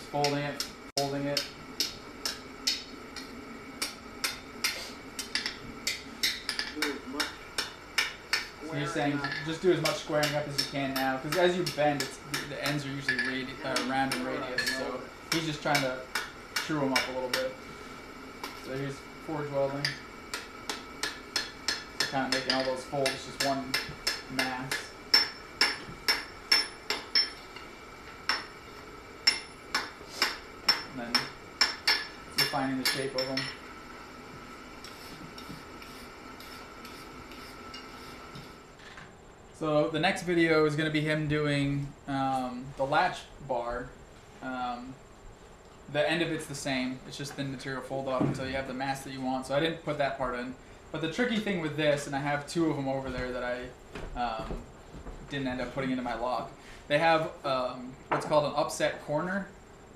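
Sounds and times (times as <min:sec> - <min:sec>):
hammer striking hot iron on anvil: 0:00.2 - 0:08.6, 0:09.2 - 0:17.6, 0:19.7 - 0:28.6, 0:29.2 - 0:33.7
hammer ringing on anvil: 0:21.0 - 0:27.4, 0:29.2 - 0:33.7.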